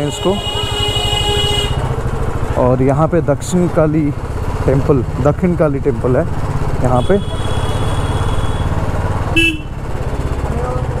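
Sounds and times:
horn toot: 9.4s - 9.8s.

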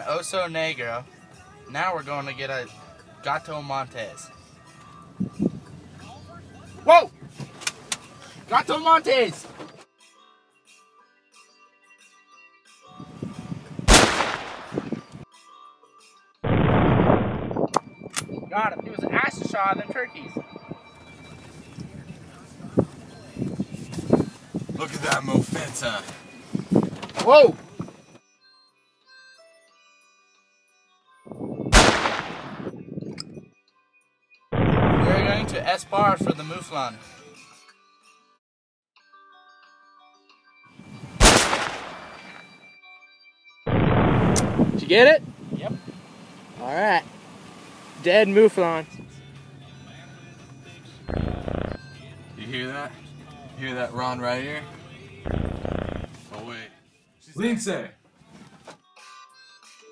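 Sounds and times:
quiet background music: 0.0s - 16.4s, 17.7s - 38.3s, 39.0s - 43.5s, 48.0s - 59.9s
rifle shot: 13.9s - 15.0s, 16.5s - 17.6s, 31.8s - 32.7s, 34.6s - 35.6s, 41.2s - 42.5s, 43.7s - 44.8s.

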